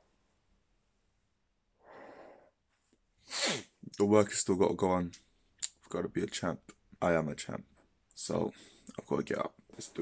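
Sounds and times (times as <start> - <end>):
soft breath: 1.8 - 3.6
man sneezing: 3.3 - 3.8.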